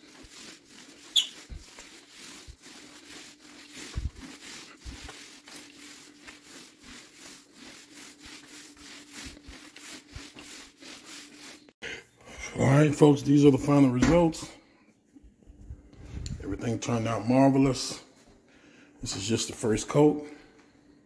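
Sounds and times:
applicator pad rubbing on floor: 0.0 - 11.8.

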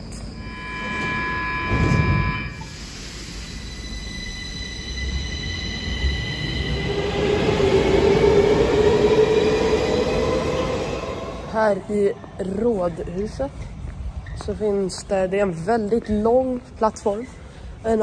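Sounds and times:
door closing signal: 0.1 - 5.4.

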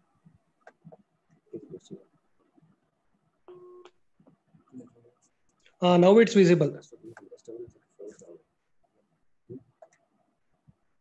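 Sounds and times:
man speaking: 1.5 - 2.0, 5.8 - 8.5.

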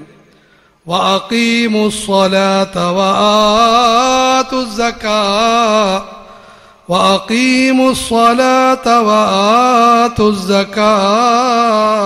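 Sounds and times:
man chanting: 0.9 - 12.0.

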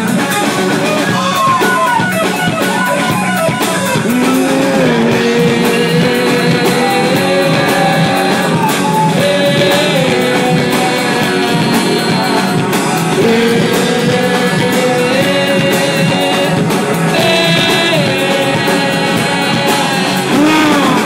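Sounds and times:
drum kit: 0.0 - 21.0
electric guitars: 0.0 - 21.0
sliding held melody line: 0.0 - 21.0.

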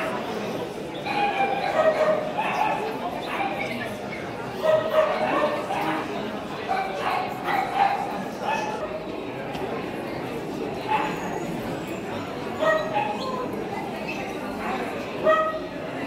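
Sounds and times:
people talking: 0.0 - 16.0
small dogs yapping: 12.5 - 13.6.

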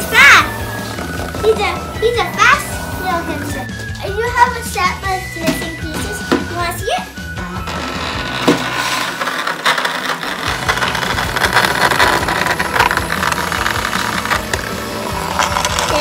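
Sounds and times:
toy motor whirring: 7.4 - 16.0
rattling and clicking on plastic: 7.6 - 16.0.

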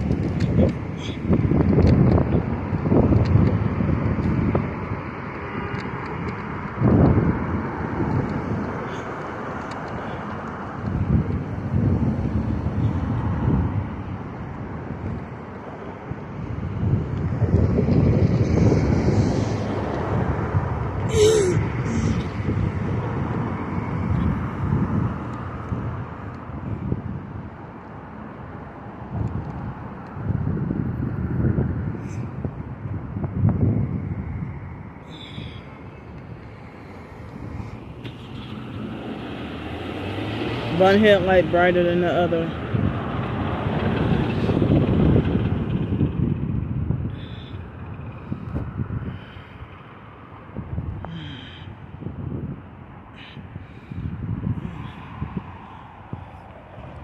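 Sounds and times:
passing road traffic: 0.0 - 57.0
wind buffeting microphone: 0.0 - 57.0.

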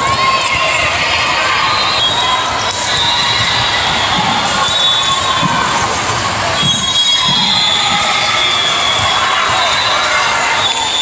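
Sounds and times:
crowd voices and shouts: 0.0 - 11.0.

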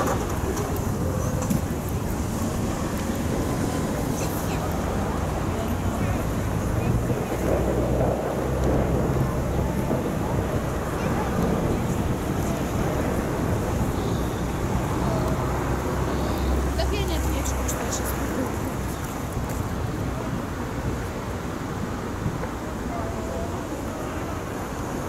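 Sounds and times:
steady outdoor noise: 0.0 - 25.0
wind rumbling on microphone: 0.0 - 25.0.

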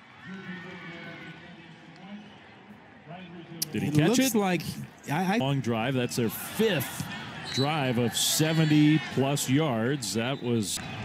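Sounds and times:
main commentary: 0.2 - 10.8.

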